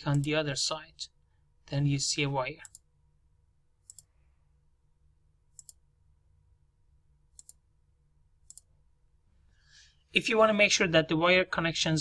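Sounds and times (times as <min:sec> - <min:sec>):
faint low hum: 0:00.0 - 0:12.0
computer mouse clicks: 0:02.6 - 0:02.9, 0:03.8 - 0:04.1, 0:05.5 - 0:05.8, 0:07.3 - 0:07.6, 0:08.4 - 0:08.7.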